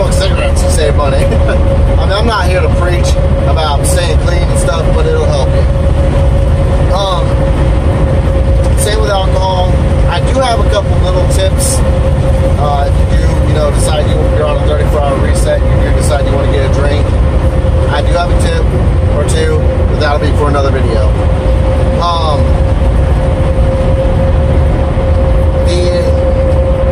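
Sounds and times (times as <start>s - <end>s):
constant whine: 0.0s - 26.9s
truck engine and road drone: 0.0s - 26.9s.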